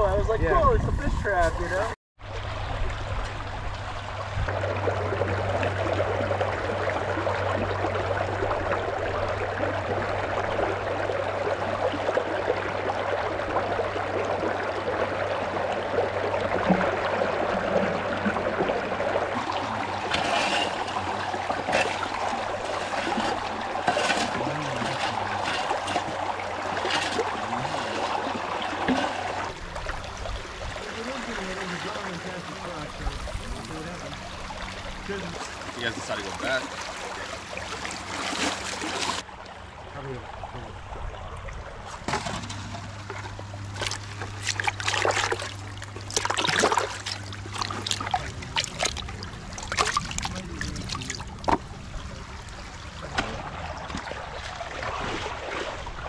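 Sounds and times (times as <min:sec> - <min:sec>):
water running through sluice box: 0:01.3 - 0:39.3, 0:41.8 - 0:56.0
gravel rattling on sluice: 0:19.1 - 0:29.5.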